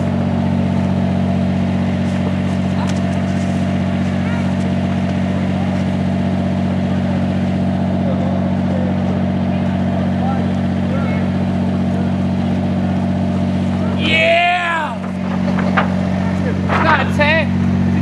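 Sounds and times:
low mechanical hum: 0.0 - 18.0.

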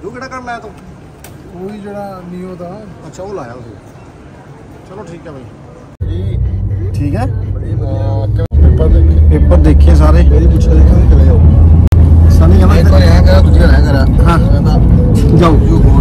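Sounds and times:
engine and road rumble: 0.0 - 16.0
men talking: 0.0 - 16.0.

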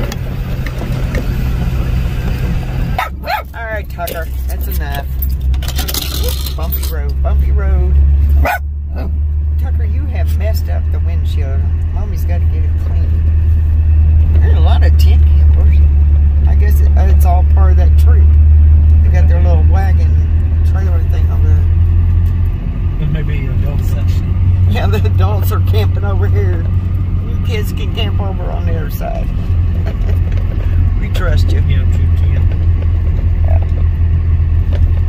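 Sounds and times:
car rolling on gravel: 0.0 - 35.0.

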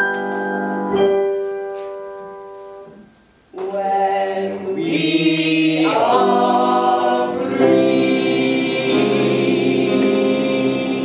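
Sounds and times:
group singing held chords: 3.6 - 11.0.

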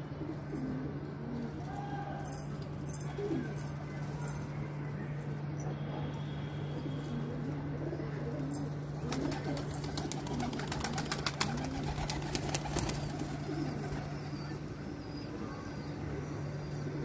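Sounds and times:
pigeons cooing: 0.0 - 4.7, 6.7 - 17.0
steady low hum: 0.0 - 17.0.

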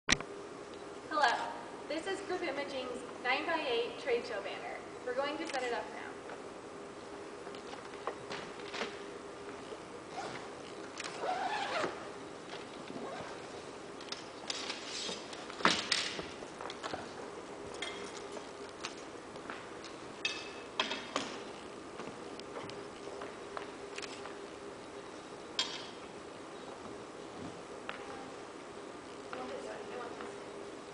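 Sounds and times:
faint steady hum: 0.1 - 30.9
bag and fabric rustling: 9.6 - 13.7.

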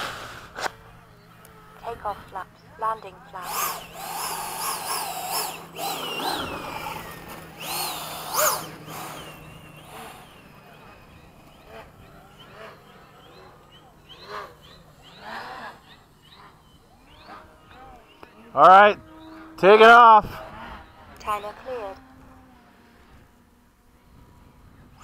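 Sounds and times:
electric ducted fan whining: 0.0 - 25.0
distant scattered sounds: 0.2 - 25.0.

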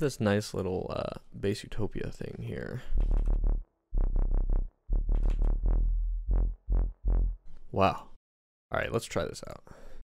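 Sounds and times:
synth bass notes: 3.0 - 7.5.

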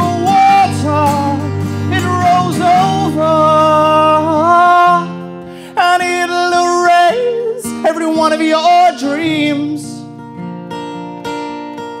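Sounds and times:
man singing: 0.0 - 10.1
strummed acoustic guitar: 0.0 - 12.0.

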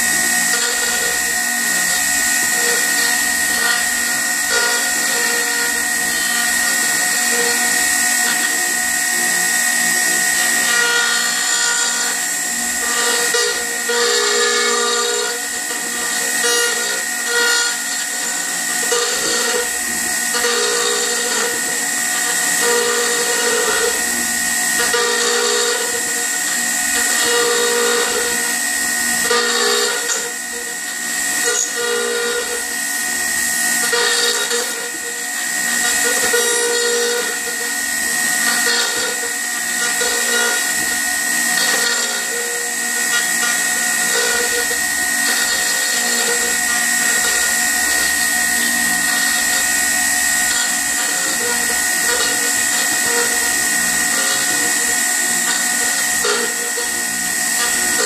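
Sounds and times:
router whining cutting wood: 0.0 - 58.0.

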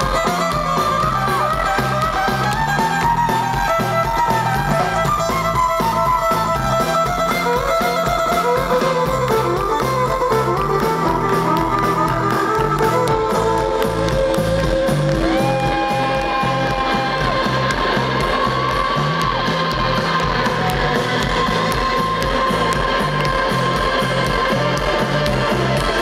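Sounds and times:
bass guitar: 0.0 - 26.0
drum beat: 0.0 - 26.0
electric guitars: 0.0 - 26.0
sliding guitar lead notes: 0.0 - 26.0.

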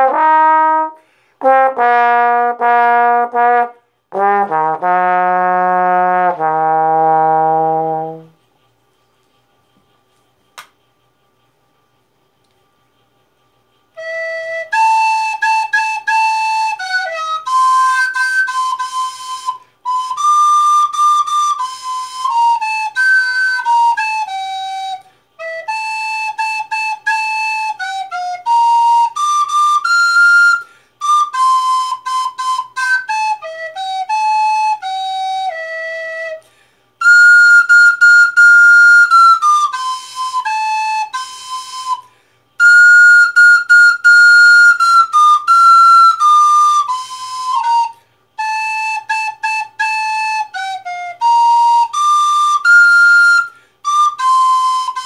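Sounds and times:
recorder playing melody: 0.0 - 8.3, 14.0 - 36.4, 37.0 - 42.0, 42.6 - 55.0.

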